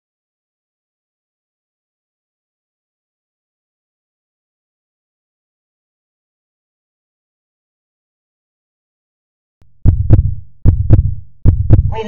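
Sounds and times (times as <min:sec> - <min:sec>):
heavy heartbeat thumps: 0:09.8 - 0:12.0.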